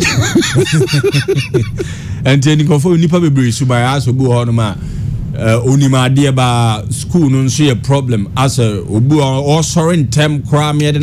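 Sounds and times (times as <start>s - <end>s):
person laughing: 0.0s - 2.0s.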